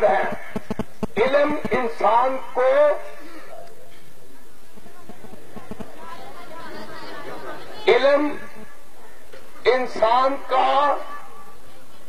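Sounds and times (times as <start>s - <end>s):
man speaking over microphone: 0.0s - 0.6s, 1.2s - 3.9s, 7.9s - 8.7s, 9.6s - 11.3s
audience chatter: 3.1s - 12.0s.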